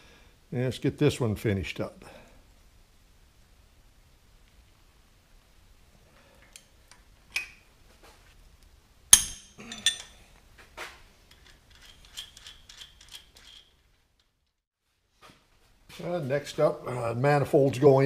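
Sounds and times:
steel tools clinking on metal: 9.2s - 10.3s.

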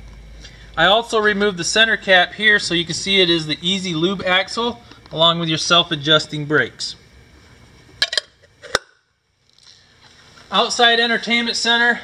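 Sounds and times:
metal cap clinking against hub: 8.0s - 8.3s.

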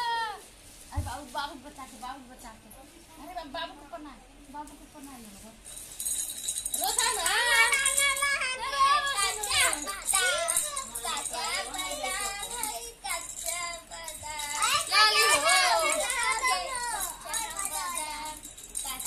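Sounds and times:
children chattering and calling: 0.0s - 0.5s, 6.8s - 19.0s.

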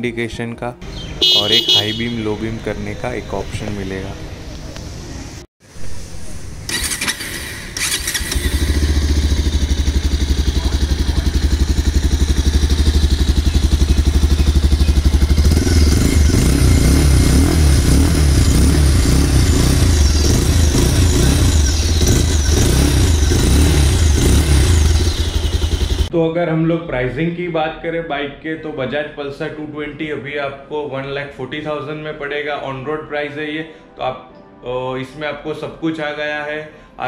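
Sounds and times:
motorcycle engine idling and revving: 0.8s - 3.0s, 6.0s - 26.1s.

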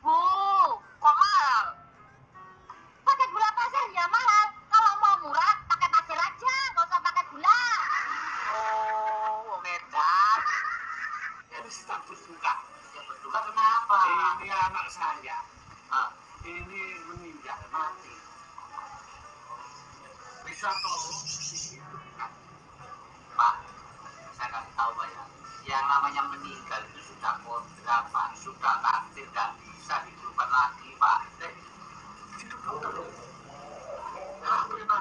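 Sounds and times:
music: 0.0s - 5.6s.

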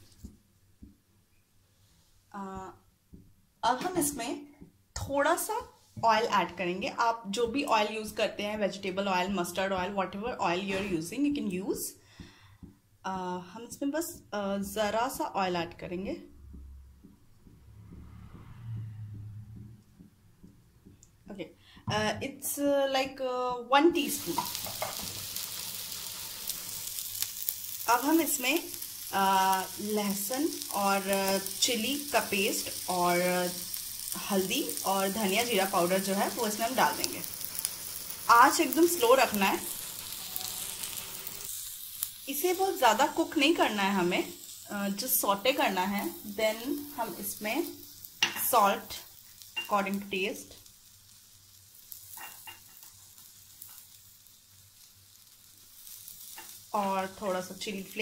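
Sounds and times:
paste frying in hot oil: 23.9s - 58.0s.

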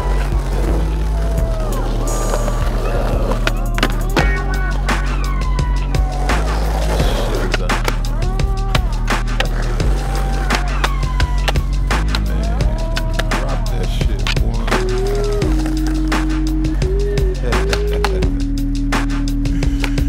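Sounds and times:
hip-hop beat with synth: 0.0s - 20.0s
skateboard wheels rolling on concrete: 0.0s - 20.0s
skateboard clacks and scrapes: 9.1s - 12.3s.

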